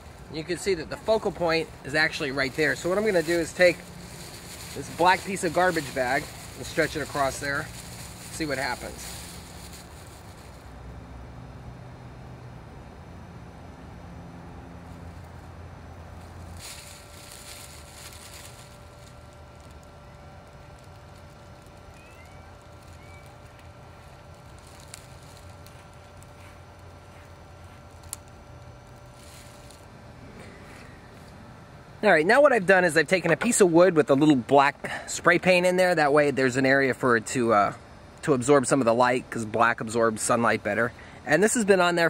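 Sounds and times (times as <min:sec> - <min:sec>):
plastic bag rustling and crinkling: 0:00.0 - 0:10.7, 0:16.2 - 0:31.4
low outdoor rumble: 0:00.0 - 0:42.0.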